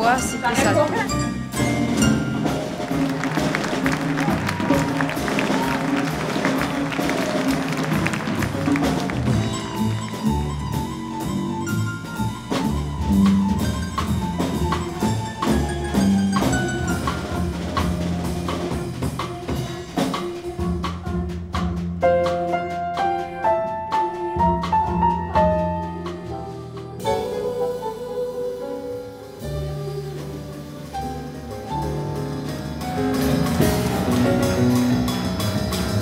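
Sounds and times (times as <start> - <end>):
drum kit played with sticks: 0.0 - 36.0
jazz piano trio music: 0.0 - 36.0.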